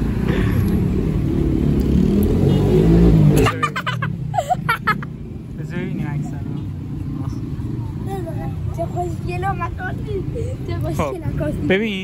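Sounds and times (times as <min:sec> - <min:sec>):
city street traffic rumble: 0:00.0 - 0:12.0
children chattering: 0:06.6 - 0:12.0.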